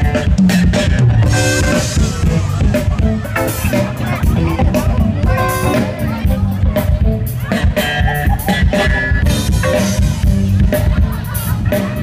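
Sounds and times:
live funk band: 0.0s - 12.0s.

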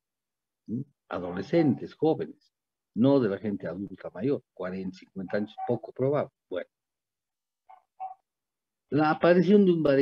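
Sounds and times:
man's voice: 0.7s - 2.3s.

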